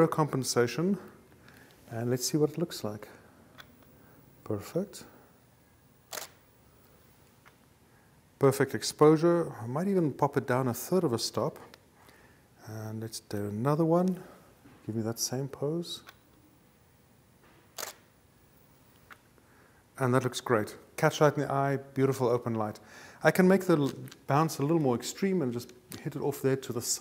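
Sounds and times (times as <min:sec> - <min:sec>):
camera shutter click: 0:06.1 - 0:06.4, 0:17.8 - 0:18.1.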